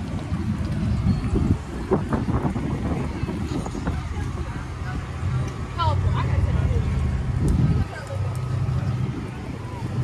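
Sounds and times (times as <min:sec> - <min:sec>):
outdoor background noise: 0:00.0 - 0:10.0
wind buffeting microphone: 0:00.0 - 0:10.0.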